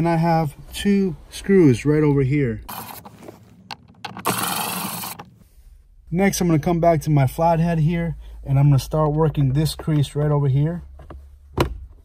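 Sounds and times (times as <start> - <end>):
power drill running: 4.2 - 5.3.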